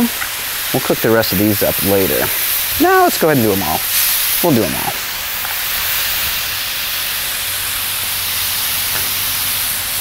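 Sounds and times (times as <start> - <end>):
meat sizzling on griddle: 0.0 - 10.0.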